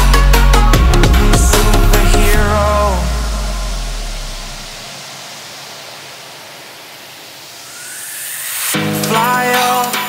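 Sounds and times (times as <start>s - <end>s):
hissing noise sweep: 0.0s - 10.0s
low bass note: 0.6s - 4.9s
faint rising tone: 1.3s - 9.4s.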